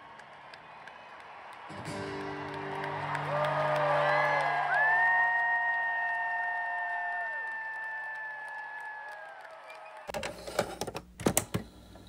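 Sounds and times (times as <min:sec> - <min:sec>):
crowd cheering and screaming: 0:00.0 - 0:10.1.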